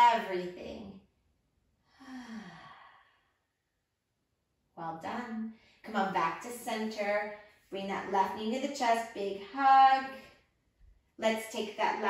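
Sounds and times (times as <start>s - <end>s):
woman sighing exhale: 2.0s - 3.2s.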